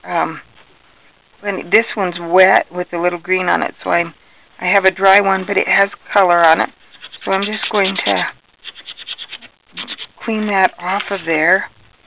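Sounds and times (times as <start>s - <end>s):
blending stump scratching on sandpaper: 6.8s - 11.5s.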